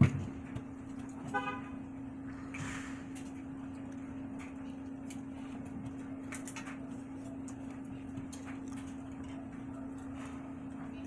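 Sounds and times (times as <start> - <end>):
steady low hum: 0.0 - 11.0
vehicle horn toot: 1.2 - 1.8.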